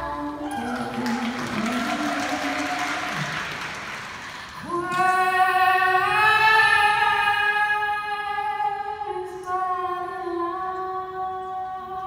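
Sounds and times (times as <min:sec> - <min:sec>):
audience applauding: 0:00.4 - 0:04.8.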